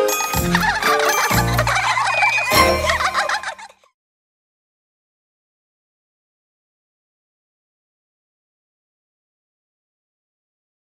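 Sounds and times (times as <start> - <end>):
cartoon theme music: 0.0 - 3.8.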